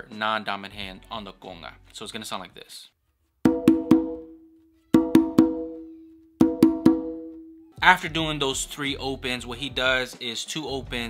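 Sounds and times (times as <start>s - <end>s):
conga open tones: 3.5s - 7.8s.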